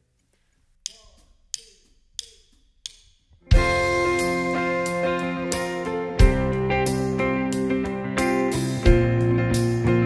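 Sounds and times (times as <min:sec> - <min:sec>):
drumsticks clicking together: 0:00.8 - 0:03.4.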